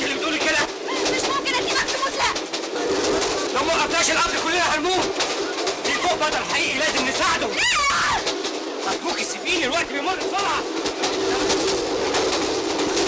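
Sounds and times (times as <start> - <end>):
people talking excitedly: 0.0 - 12.3
train running: 0.0 - 13.0.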